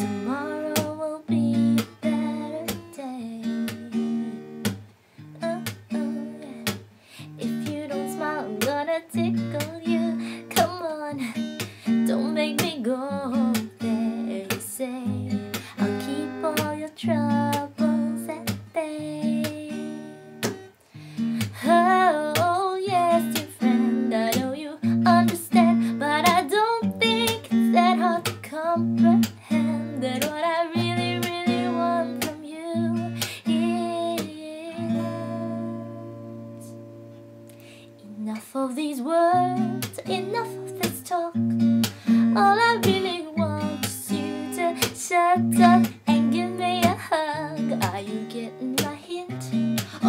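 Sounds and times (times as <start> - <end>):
acoustic guitar strumming: 0.0 - 37.6, 39.4 - 50.0.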